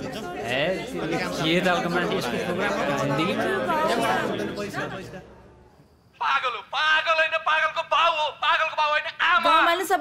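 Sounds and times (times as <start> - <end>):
indistinct chatter: 0.0 - 5.8.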